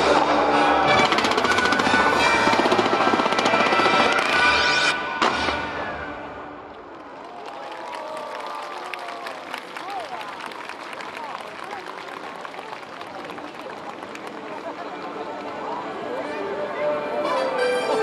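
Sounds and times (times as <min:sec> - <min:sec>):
fireworks crackling: 0:00.0 - 0:07.2.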